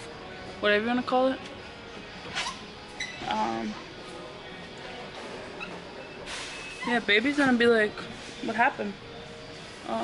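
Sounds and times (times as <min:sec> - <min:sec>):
store noise hiss: 0:00.0 - 0:10.0.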